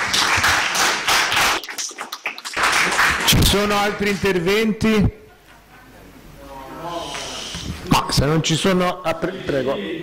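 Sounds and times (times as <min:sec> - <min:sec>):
small group clapping: 0:00.0 - 0:04.4.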